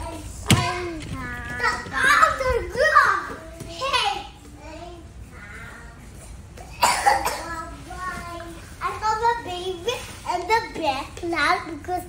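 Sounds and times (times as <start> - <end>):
child coughing: 6.6 - 7.7.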